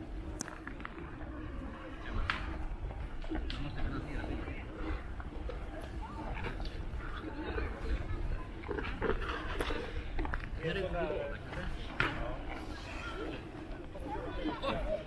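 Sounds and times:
distant people talking and calling: 0.0s - 15.0s.

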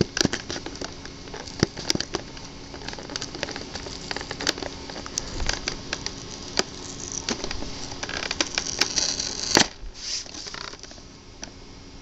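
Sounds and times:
plastic packaging crinkling and clicking: 0.0s - 11.0s.

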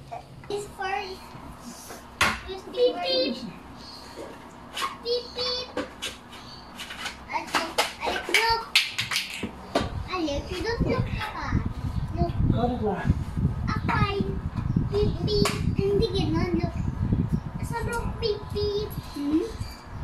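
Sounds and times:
young children chattering: 2.6s - 3.8s.

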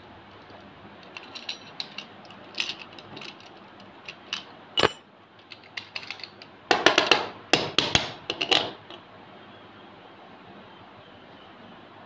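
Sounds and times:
padlock clicks and knocks on concrete: 4.8s - 8.8s.

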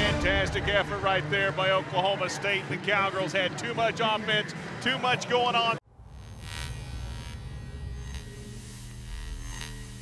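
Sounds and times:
low droning hum: 5.9s - 10.0s
sustained tones: 5.9s - 10.0s
thin high whine: 5.9s - 10.0s.

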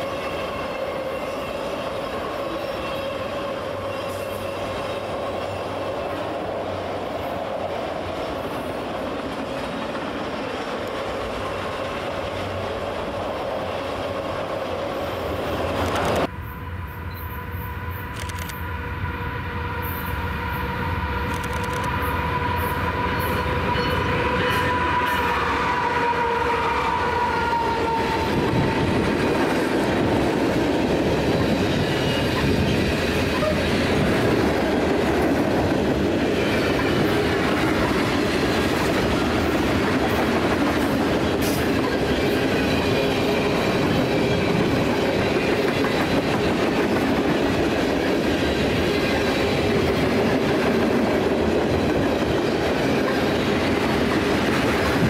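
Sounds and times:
diesel locomotives passing: 0.0s - 55.0s.

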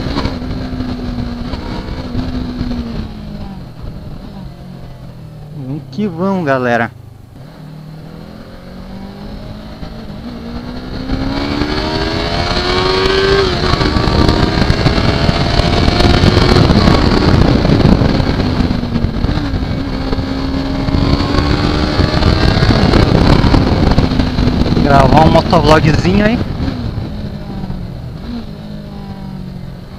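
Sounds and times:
motorcycle engine accelerating: 0.0s - 29.9s
wind noise: 0.0s - 29.9s.

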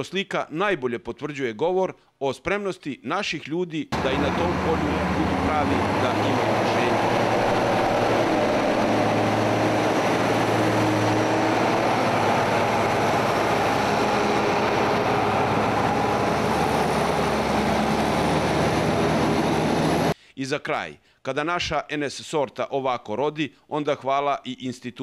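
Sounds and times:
diesel engines running under load: 4.0s - 20.2s.

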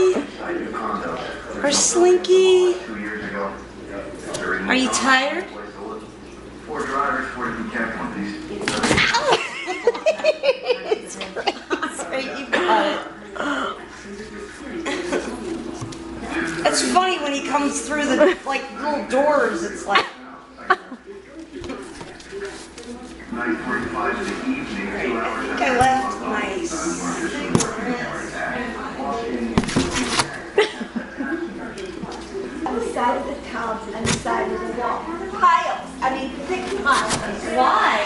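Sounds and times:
faint indistinct voices: 0.0s - 38.0s
people talking: 0.0s - 38.0s.

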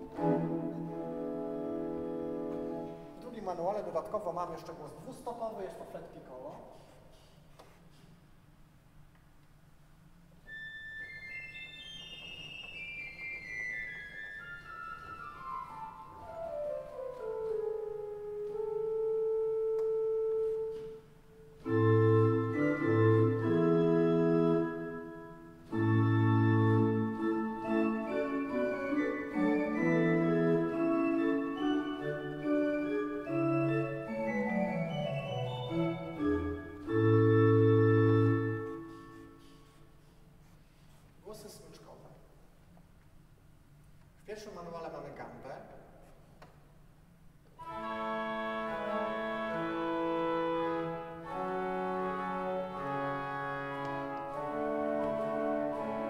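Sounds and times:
pipe organ playing: 0.0s - 5.0s, 10.4s - 39.8s, 47.6s - 56.0s.

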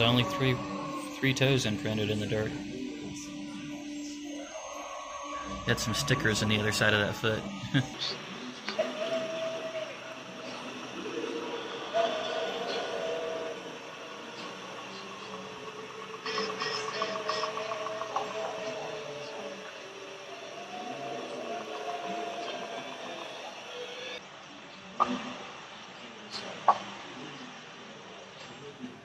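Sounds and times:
wavering howl-like calls: 0.0s - 24.2s.

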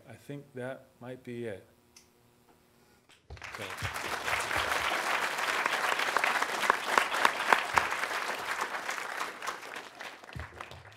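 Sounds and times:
audience applauding: 3.3s - 10.9s.

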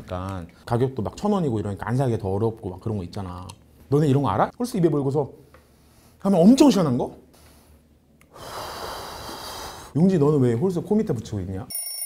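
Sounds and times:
man breathing in through mouth: 7.4s - 10.0s.

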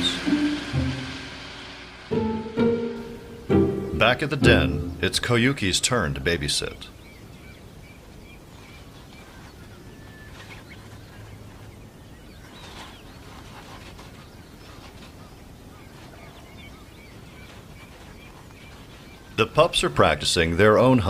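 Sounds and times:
low background hiss: 0.0s - 21.0s
bird chirps: 3.0s - 19.8s.

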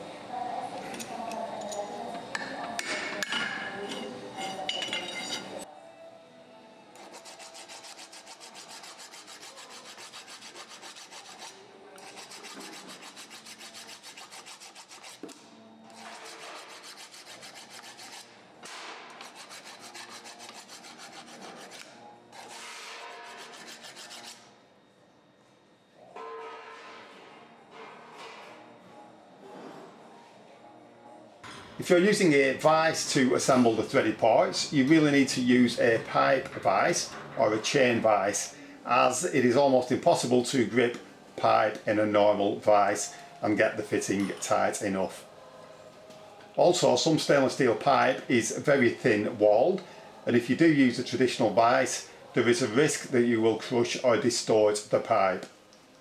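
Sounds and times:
hand file rasping on steel pipe: 7.0s - 15.2s, 16.0s - 18.3s, 19.2s - 24.5s.

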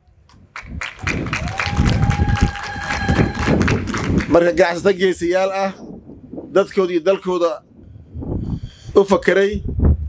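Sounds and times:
audience clapping and cheering: 0.4s - 4.7s.

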